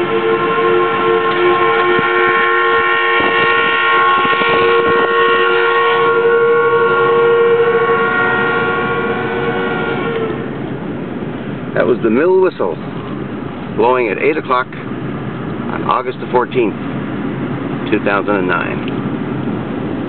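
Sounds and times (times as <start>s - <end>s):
mill whistle blowing a chord: 0.0s - 10.4s.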